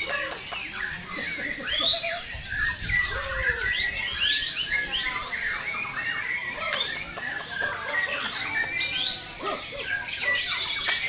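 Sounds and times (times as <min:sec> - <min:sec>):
caged birds singing: 0:00.0 - 0:11.0.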